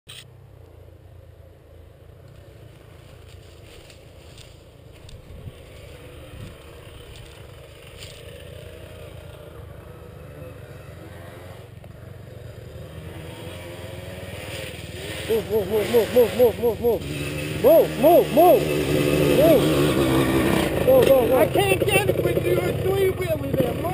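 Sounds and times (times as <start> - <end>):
off-road vehicle engine idling: 0.5 - 13.3, 14.7 - 23.9.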